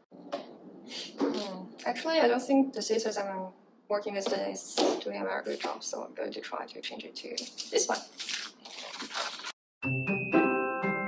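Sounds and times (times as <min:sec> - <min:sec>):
scissors cutting crinkling bag: 0:07.6 - 0:09.6.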